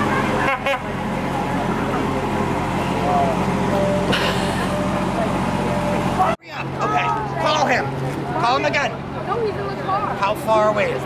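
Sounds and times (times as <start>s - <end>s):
faint voices: 0.0s - 11.0s
low engine hum: 0.0s - 11.0s.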